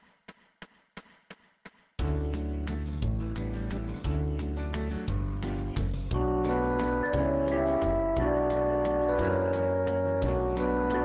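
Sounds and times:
metronome count-in clicks: 6.1 - 11.0.

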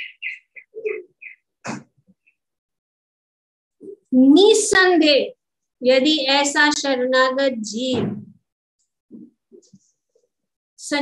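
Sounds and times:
small bird chirping: 0.0 - 1.5.

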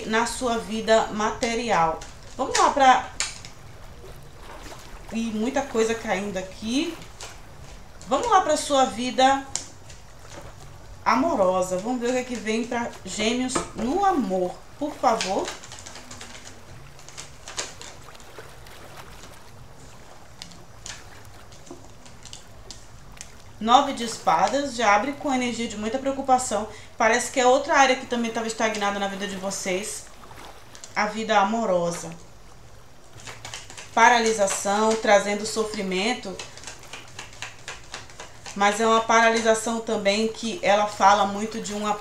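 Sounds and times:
low background noise: 0.0 - 42.0
low steady hum: 0.0 - 42.0
cards clicking and rustling: 15.3 - 18.4, 33.1 - 35.1, 35.7 - 39.4
woman breathing: 26.7 - 27.0.

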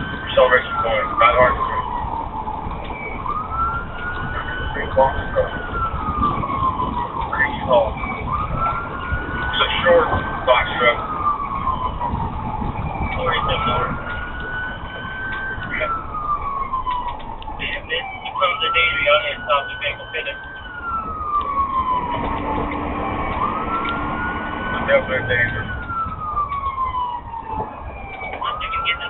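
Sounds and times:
car engine and road noise: 0.0 - 29.0
police siren wailing: 0.0 - 29.0.

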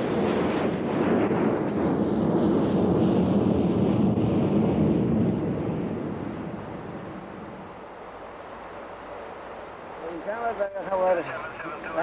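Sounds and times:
jet engines rumbling: 0.0 - 12.0.

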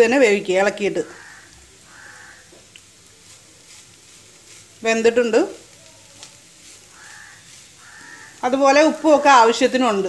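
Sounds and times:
cabbage sizzling in a frying pan: 0.0 - 10.0
wooden spatula scraping a pan: 0.2 - 10.0.

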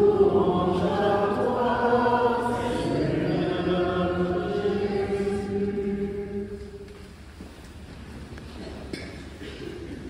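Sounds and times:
congregation singing: 0.0 - 7.1.

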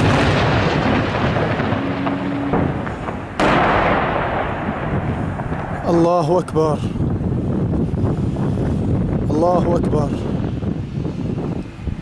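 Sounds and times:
artillery shell explosion rumble: 0.0 - 9.3.

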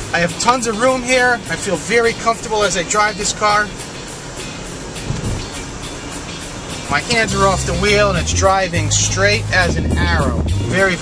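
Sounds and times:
road and tyre noise: 0.0 - 11.0
car engine: 5.2 - 10.9.

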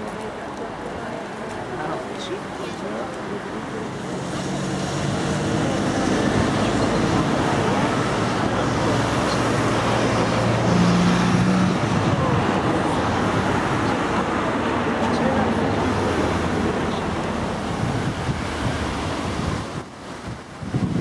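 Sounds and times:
passing vehicles: 0.0 - 21.0.

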